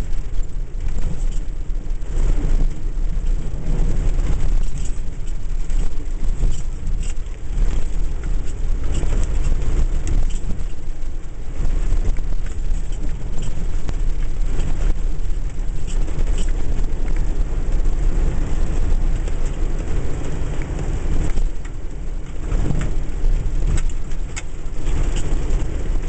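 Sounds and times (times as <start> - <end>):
small ticks and spatters: 0.0 - 26.0.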